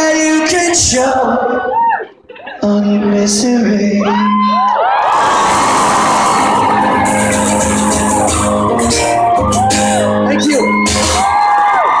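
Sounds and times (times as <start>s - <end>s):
crowd cheering and screaming: 1.4s - 2.2s, 4.0s - 12.0s
high whoops: 1.6s - 2.1s, 4.0s - 12.0s
acoustic guitar chords: 5.6s - 11.4s.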